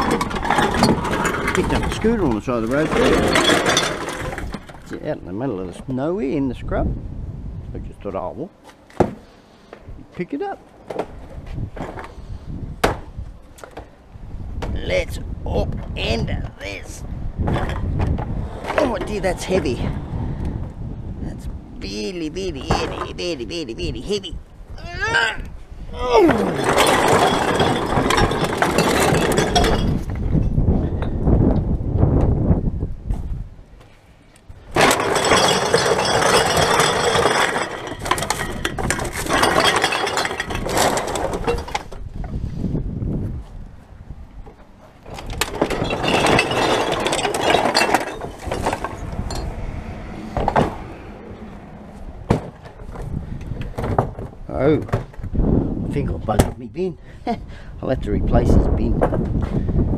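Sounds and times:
plastic bottles and cans clattering: 0:00.0 - 0:05.0, 0:26.3 - 0:30.2, 0:34.7 - 0:42.1, 0:45.1 - 0:49.5.

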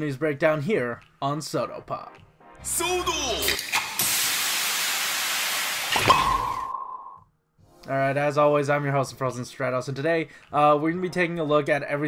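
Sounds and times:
fizzing hiss: 0:03.6 - 0:06.2.

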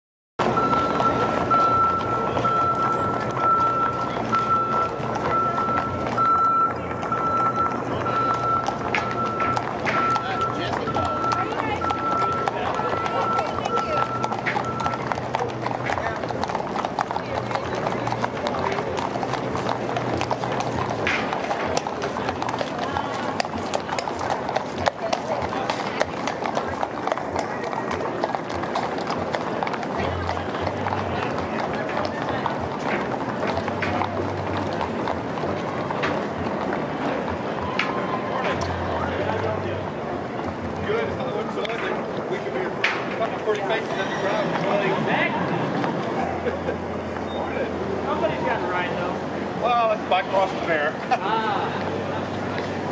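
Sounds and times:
crowd chatter: 0:00.4 - 0:52.9
hooves clopping on asphalt: 0:00.4 - 0:52.9
high beep: 0:00.5 - 0:15.2.

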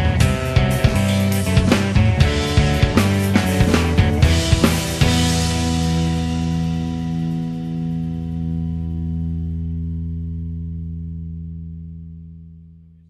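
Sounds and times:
distorted electric guitar chord ringing: 0:00.0 - 0:12.6.

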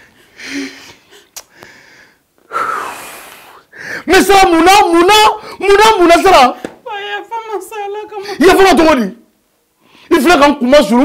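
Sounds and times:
person breathing heavily: 0:00.0 - 0:04.1.

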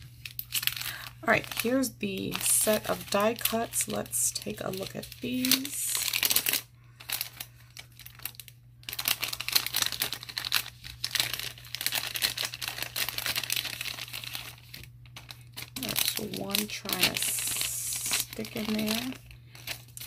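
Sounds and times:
plastic sleeve crinkling: 0:00.0 - 0:20.0.

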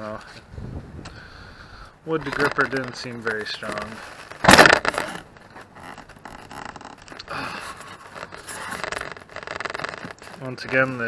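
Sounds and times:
rubbing and creaking wood: 0:02.0 - 0:11.0
wood block rasping scrape: 0:03.7 - 0:11.0.

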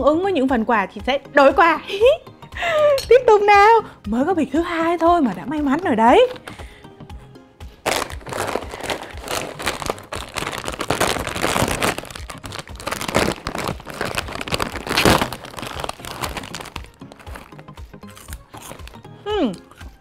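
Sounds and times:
background music: 0:00.0 - 0:20.0
plastic bag crinkling and tearing: 0:07.8 - 0:19.0.

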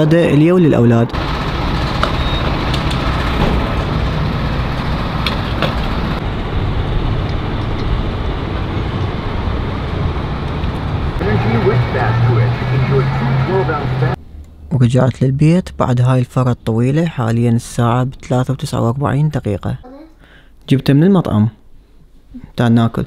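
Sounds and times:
traffic and engine noise: 0:00.0 - 0:15.8
low hum: 0:00.0 - 0:18.1
indistinct voices: 0:11.2 - 0:14.2.

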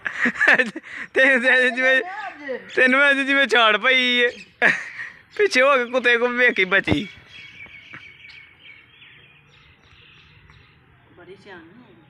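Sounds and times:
small birds chirping: 0:00.1 - 0:12.0.

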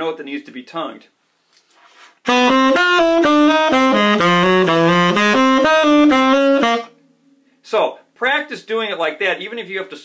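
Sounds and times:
tenor saxophone playing bebop: 0:02.2 - 0:07.0.

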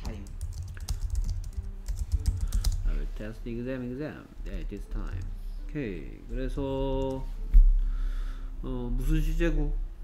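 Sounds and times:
keyboard typing: 0:00.0 - 0:02.9.

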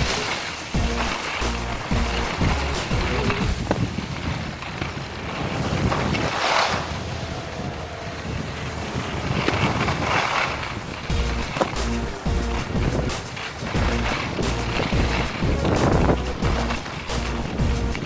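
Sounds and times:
background music: 0:00.0 - 0:03.6, 0:11.1 - 0:18.0
skis hissing on snow: 0:00.0 - 0:07.2, 0:09.2 - 0:18.0
wind rushing over microphone: 0:00.0 - 0:18.0.

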